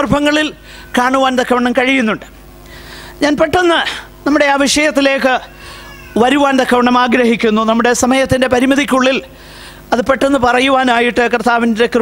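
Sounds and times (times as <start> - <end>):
man preaching through microphone: 0.0 - 2.4, 3.2 - 12.0.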